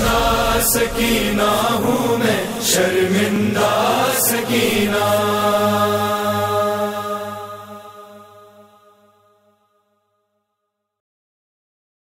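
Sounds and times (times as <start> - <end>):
sustained vocal drone: 0.0 - 9.4.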